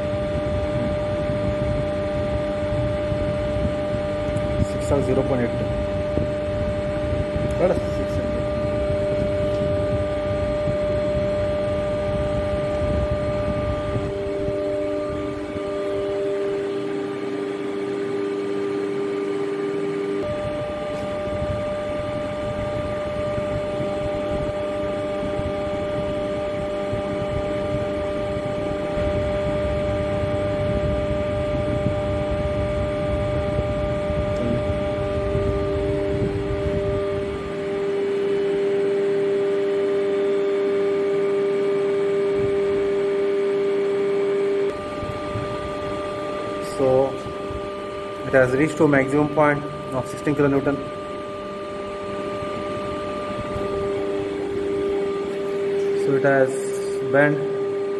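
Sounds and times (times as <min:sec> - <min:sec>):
machine rough low rumble: 0:00.0 - 0:19.2, 0:19.9 - 0:39.8, 0:44.5 - 0:57.9
testing machine humming: 0:00.0 - 0:57.9.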